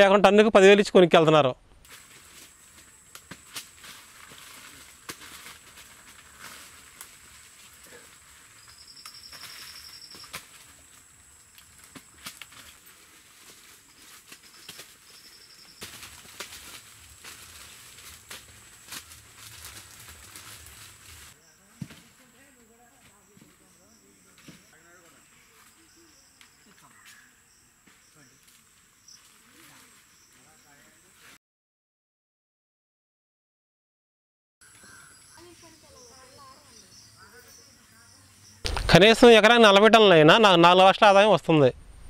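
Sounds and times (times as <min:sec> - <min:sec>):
leaves rustling: 0:01.8 - 0:27.4, 0:28.0 - 0:31.4
crickets chirring: 0:01.9 - 0:31.3, 0:34.6 - 0:40.8
sharp clicks: 0:38.6 - 0:39.2.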